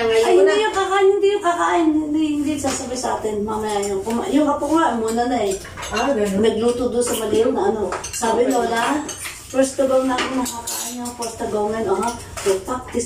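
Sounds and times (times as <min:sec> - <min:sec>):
people talking: 0:00.0 - 0:13.0
cutlery clinking on dishes: 0:03.6 - 0:13.0.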